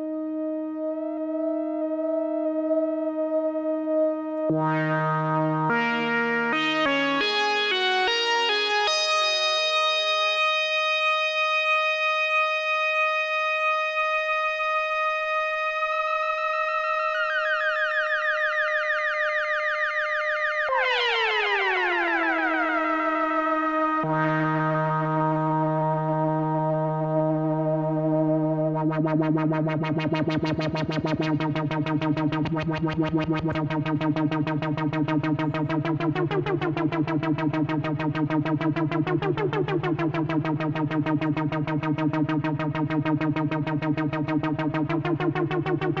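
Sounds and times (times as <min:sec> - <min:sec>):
wobbling synthesizer note: 0:00.0 - 0:09.1, 0:16.2 - 0:46.0.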